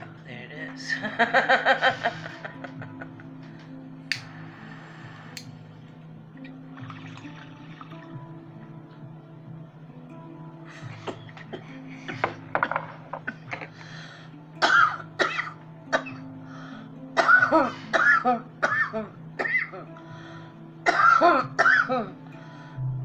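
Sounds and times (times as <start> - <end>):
soft background music: 0.0 - 23.0
woman coughing hard: 14.6 - 16.2, 17.2 - 19.8, 20.8 - 22.1.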